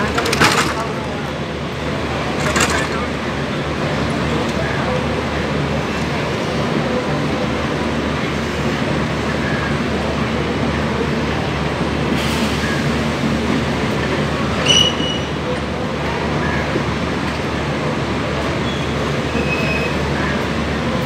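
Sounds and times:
train wheels rumbling on rail: 0:00.0 - 0:21.0.

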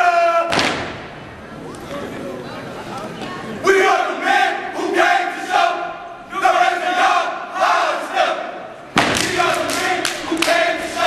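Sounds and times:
sharp foot stomp: 0:00.5 - 0:01.2, 0:08.9 - 0:09.5
group shouting a chant: 0:03.6 - 0:11.0.

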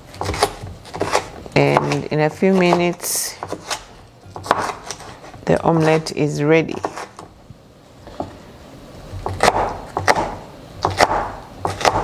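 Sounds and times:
knife chopping on wooden board: 0:00.1 - 0:05.2, 0:06.7 - 0:07.3, 0:09.1 - 0:12.0.

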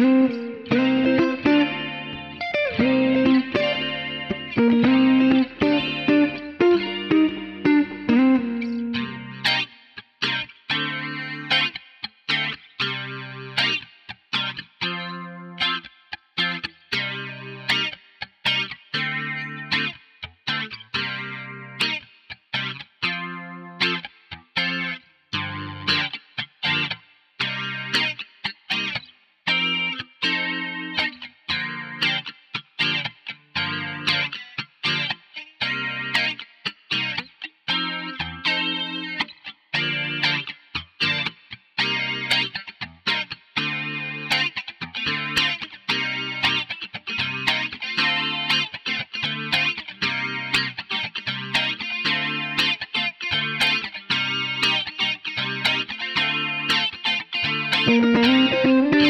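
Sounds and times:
electric guitar chord stabs: 0:00.0 - 0:11.8, 0:57.7 - 0:59.0
muted guitar strums clicking: 0:57.8 - 0:59.0.

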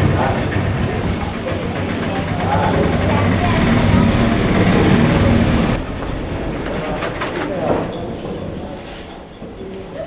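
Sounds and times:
bottling machinery humming and rattling: 0:00.0 - 0:09.7.

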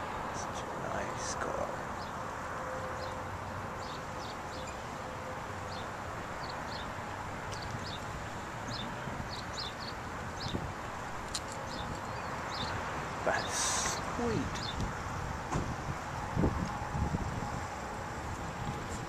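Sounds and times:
distant traffic hum: 0:00.0 - 0:19.0
small birds chirping: 0:05.7 - 0:15.0.

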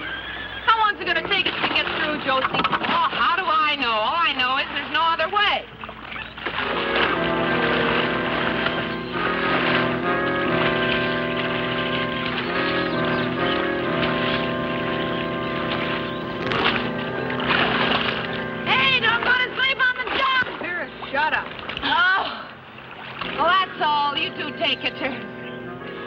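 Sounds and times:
film score music with sustained chords: 0:05.7 - 0:26.0.

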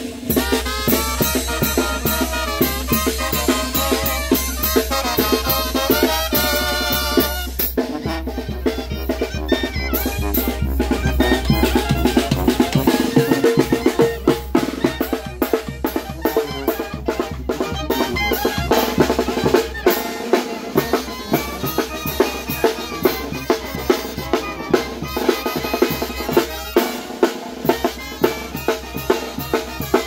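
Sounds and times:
brass band playing a march: 0:00.0 - 0:30.0
snare and bass drum beat: 0:00.0 - 0:30.0.

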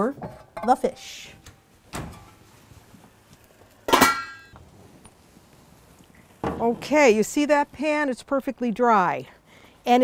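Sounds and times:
metal lid clanking on pan: 0:03.9 - 0:04.5.

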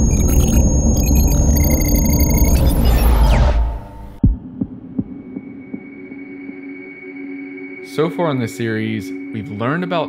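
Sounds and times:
soft heartbeat-like pulses: 0:04.2 - 0:07.2.

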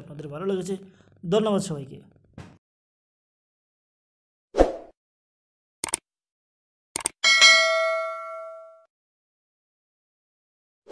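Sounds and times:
bell ding: 0:07.2 - 0:08.9.

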